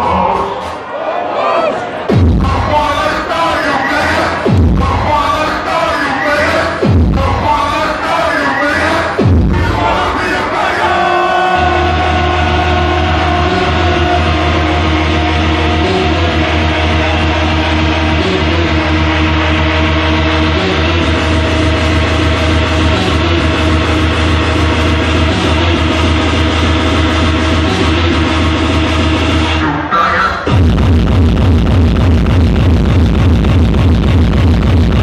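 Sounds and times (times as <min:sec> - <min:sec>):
hardcore dance music: 0:00.0 - 0:00.9, 0:01.9 - 0:35.0
heavy bass: 0:01.9 - 0:35.0.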